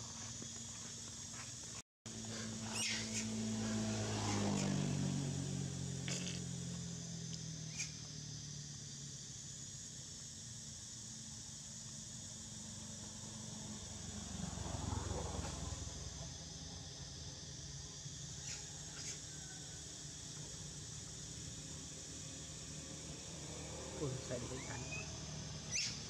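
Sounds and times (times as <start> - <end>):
low motor hum: 0.0 - 18.2
constant high hiss: 5.4 - 14.4, 15.2 - 26.0.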